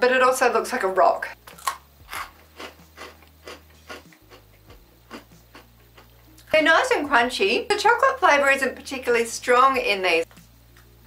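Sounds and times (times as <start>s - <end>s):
crunchy cookie being chewed: 1.4s - 6.5s.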